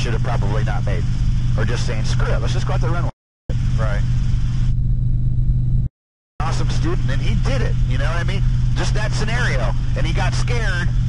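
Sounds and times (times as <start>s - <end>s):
helicopter engine and rotor drone: 0.0s - 11.0s.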